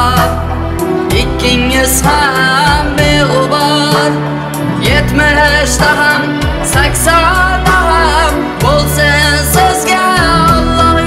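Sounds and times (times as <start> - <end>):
amplified band with bass: 0.0 - 11.0
boy singing into microphone: 1.1 - 11.0.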